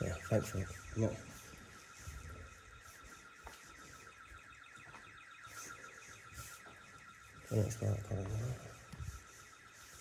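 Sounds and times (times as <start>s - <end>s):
building alarm with pulsing warble: 0.0s - 10.0s.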